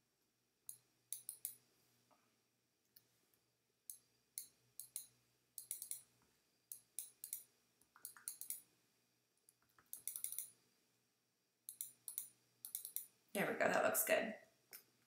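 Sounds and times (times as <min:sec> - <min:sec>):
computer mouse clicks: 0:00.7 - 0:01.7, 0:03.9 - 0:06.1, 0:06.7 - 0:08.7, 0:09.5 - 0:10.6, 0:11.7 - 0:13.2.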